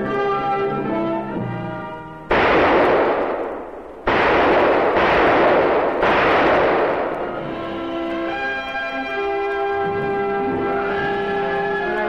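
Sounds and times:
loud gunshots with reverberation: 2.3 - 9.1
brass band music: 5.0 - 12.0.

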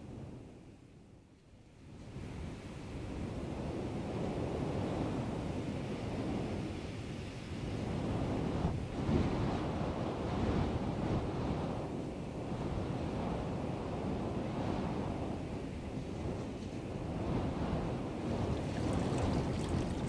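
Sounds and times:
steady rushing surging noise: 17.2 - 20.0.

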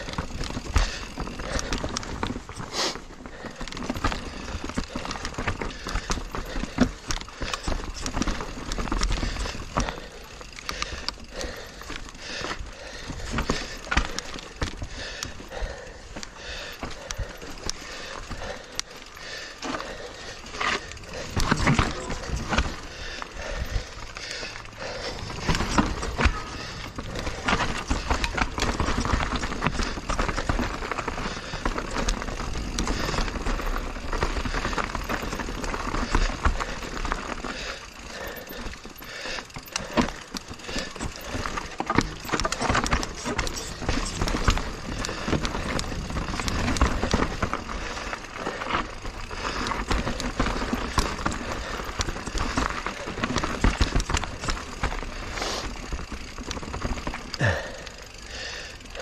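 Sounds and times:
bike rattling and knocking: 0.0 - 59.0
bike tyres on dirt and stones: 0.0 - 59.0.

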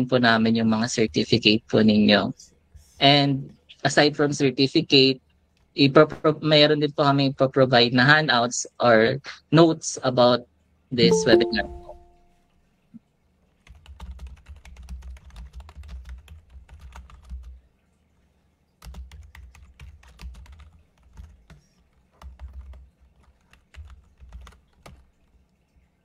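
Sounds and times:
computer keyboard typing: 13.6 - 17.6, 18.8 - 25.3.

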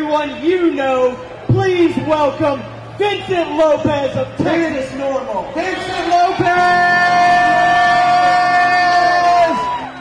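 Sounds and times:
man's long drawn-out shout: 5.8 - 10.0.

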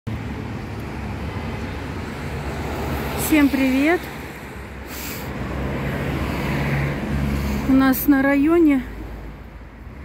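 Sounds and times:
vehicle traffic rumble: 0.1 - 10.0.

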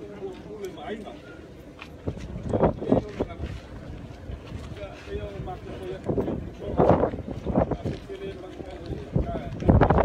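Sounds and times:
wind buffeting microphone: 1.9 - 10.0.

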